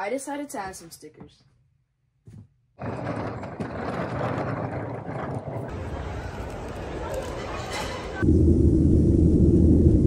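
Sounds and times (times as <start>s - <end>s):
suitcase wheels rolling on concrete: 2.8s - 8.0s.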